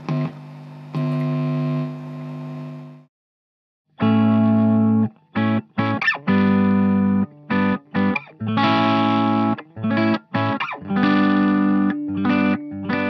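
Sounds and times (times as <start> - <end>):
distorted electric guitar chords: 0.0 - 2.7, 4.0 - 13.0.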